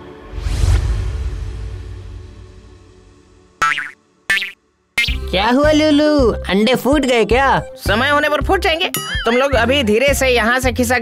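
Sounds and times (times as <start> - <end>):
comic wobbling sound effect: 3.6 - 5.2.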